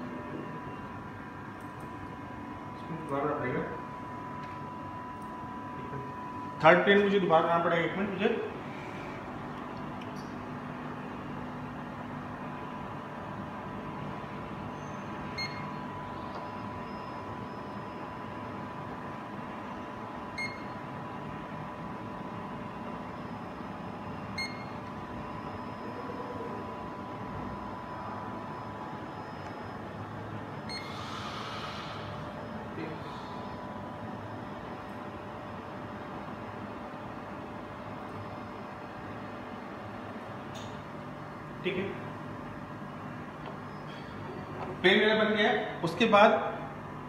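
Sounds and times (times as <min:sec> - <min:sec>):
machine hum with faint whine: 0:00.0 - 0:47.0
short beeps: 0:14.8 - 0:15.8, 0:20.4 - 0:20.8, 0:24.4 - 0:24.8, 0:30.7 - 0:31.0.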